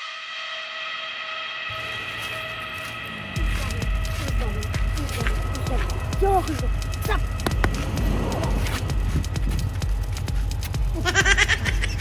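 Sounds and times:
clip-clop hoofbeats: 2.4s - 12.0s
low thump: 7.4s - 9.7s.

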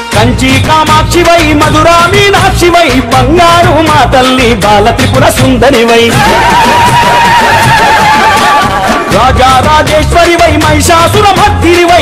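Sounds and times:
instrumental backing and drums: 0.0s - 12.0s
person singing with vibrato: 0.0s - 12.0s.

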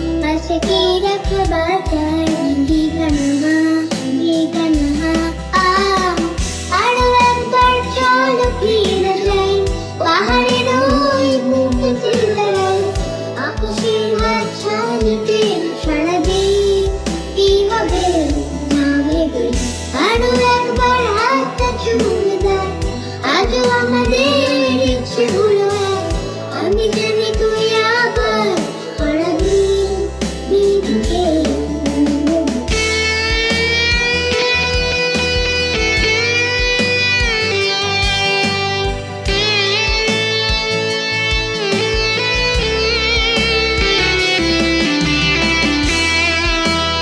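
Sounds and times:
girl singing: 0.0s - 35.0s
instrumental backing with bass pulse: 0.0s - 47.0s.

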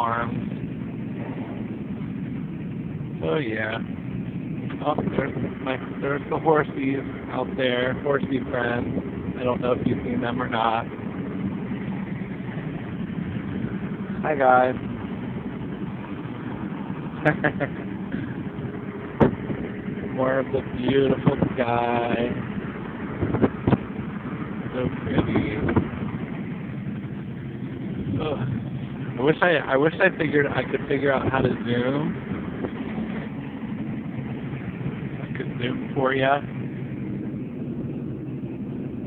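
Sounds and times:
car road and engine noise: 0.0s - 39.0s.

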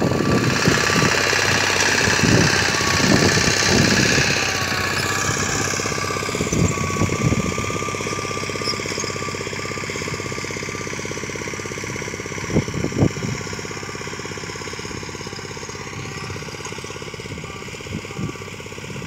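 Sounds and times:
small reaper engine running: 0.0s - 19.0s.

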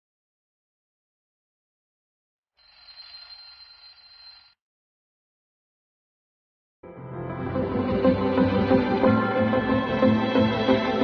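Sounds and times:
alarm clock ringing: 2.6s - 4.6s.

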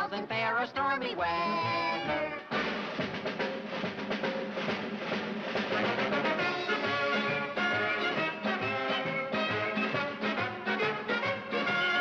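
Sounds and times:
drum roll on snare and bass drum: 1.4s - 12.0s.

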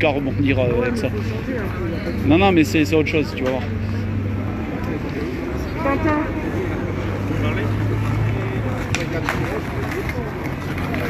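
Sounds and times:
people talking in background: 0.0s - 11.0s.

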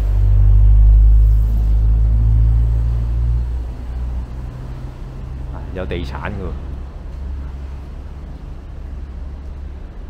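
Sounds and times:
vehicle engine rumble passing: 0.0s - 10.0s.

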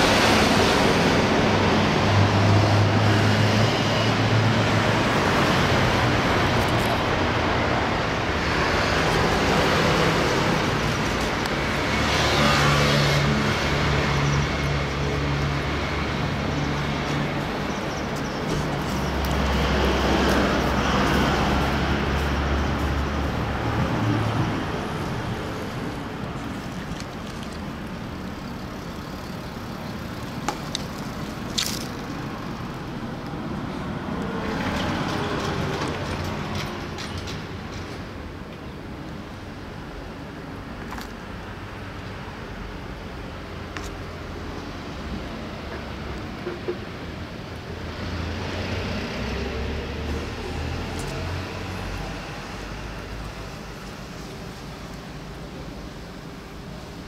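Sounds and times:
passing vehicle engines rumbling: 0.0s - 57.0s.

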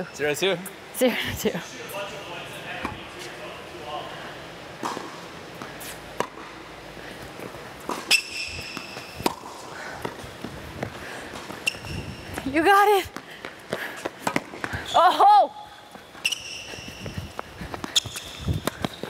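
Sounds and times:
racket striking ball: 7.9s - 10.2s, 14.2s - 14.7s
ball bouncing: 7.9s - 14.9s
shoe squeak on court: 8.0s - 9.2s, 11.6s - 12.2s, 16.2s - 17.2s, 17.9s - 19.0s.

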